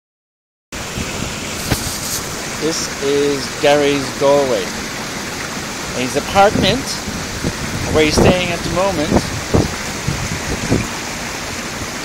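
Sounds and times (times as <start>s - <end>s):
steady rushing noise: 0.8s - 12.0s.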